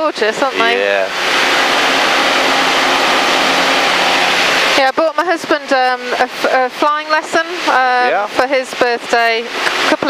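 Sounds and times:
light aircraft engine and propeller: 0:00.0 - 0:10.0.

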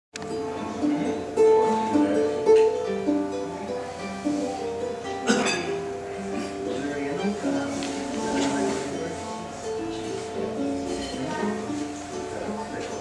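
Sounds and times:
ukulele picking: 0:00.2 - 0:13.0.

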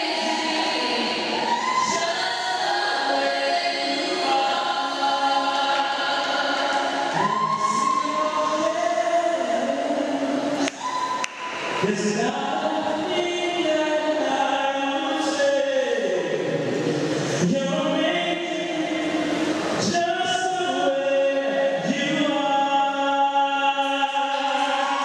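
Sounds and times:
a cappella group singing: 0:00.0 - 0:11.0, 0:11.8 - 0:25.0.

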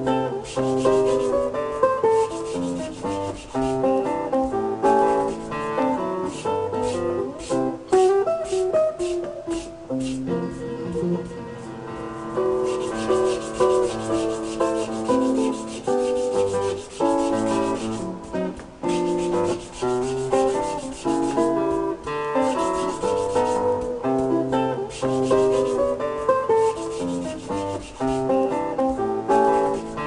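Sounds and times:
acoustic guitar music: 0:00.0 - 0:30.0
sandpaper rubbing on wood: 0:00.4 - 0:04.0, 0:04.8 - 0:05.6, 0:06.2 - 0:10.3, 0:12.6 - 0:24.3, 0:24.9 - 0:30.0.

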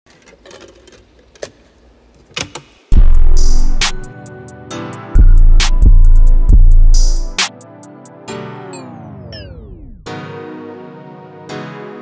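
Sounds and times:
deep bass and drums: 0:02.9 - 0:04.1, 0:05.2 - 0:07.4.

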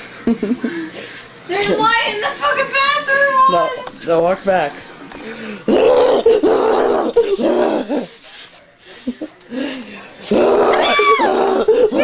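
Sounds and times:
woman laughing loudly: 0:10.8 - 0:12.0.

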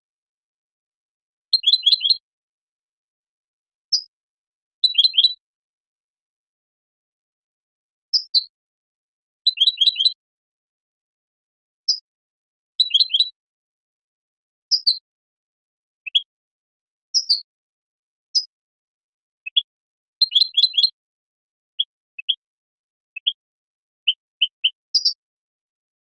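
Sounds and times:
finch twittering chirps: 0:01.6 - 0:02.2, 0:04.8 - 0:05.4, 0:09.5 - 0:10.2, 0:12.8 - 0:13.4, 0:17.1 - 0:17.5, 0:19.4 - 0:21.0, 0:21.7 - 0:22.4, 0:23.1 - 0:23.4, 0:24.0 - 0:25.2.

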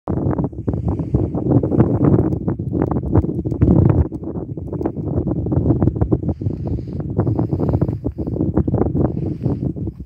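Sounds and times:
wind buffeting microphone: 0:00.1 - 0:10.0.

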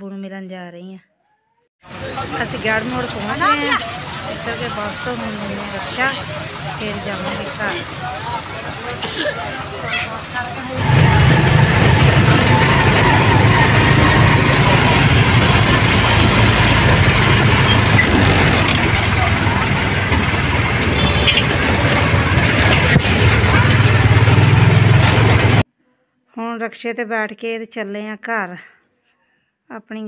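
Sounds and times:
road noise: 0:01.8 - 0:25.7
vehicle engine running: 0:01.9 - 0:25.6.

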